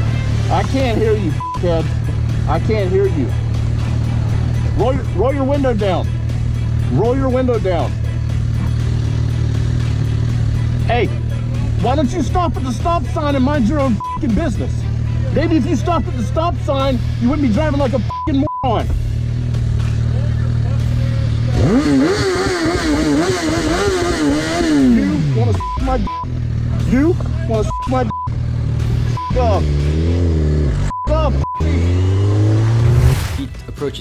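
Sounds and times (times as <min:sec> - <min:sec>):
motorcycle engine idling: 0:00.0 - 0:18.0, 0:18.9 - 0:29.6
background music: 0:00.0 - 0:34.0.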